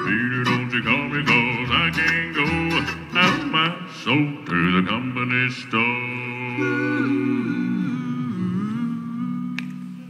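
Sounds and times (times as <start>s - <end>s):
male voices humming in harmony: 6.2s - 10.0s.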